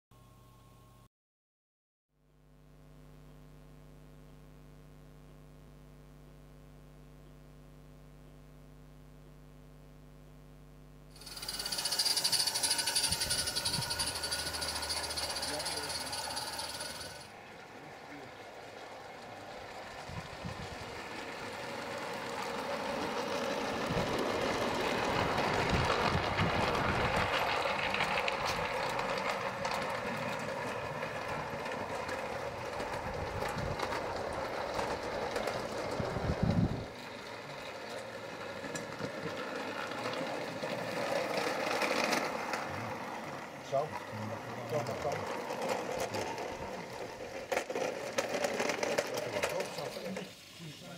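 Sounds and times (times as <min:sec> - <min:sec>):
steam locomotive hissing: 0:11.2 - 0:17.3
model train running over rails: 0:11.2 - 0:50.9.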